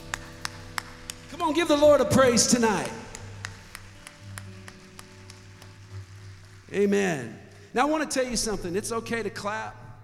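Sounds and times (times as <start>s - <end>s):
people clapping: 0.0s - 8.3s.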